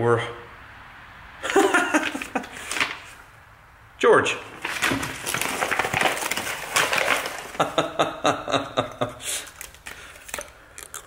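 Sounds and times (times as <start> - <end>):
paper bag rustling and crinkling: 1.5 - 3.2, 4.5 - 7.9.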